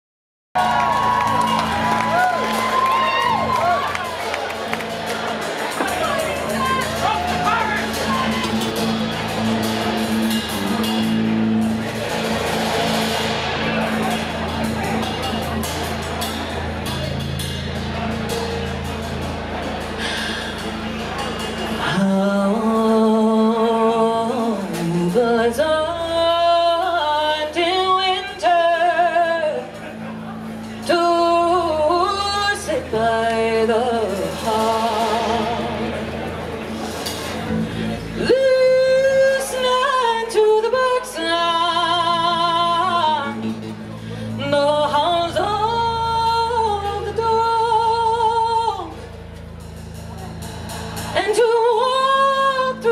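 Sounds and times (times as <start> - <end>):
steady drum beat: 0.6 - 21.9, 48.8 - 52.2
sustained low chords: 1.1 - 27.0
low drone: 8.4 - 22.0
woman singing into a microphone: 21.8 - 30.2, 30.8 - 36.1, 38.1 - 49.1, 51.1 - 52.9.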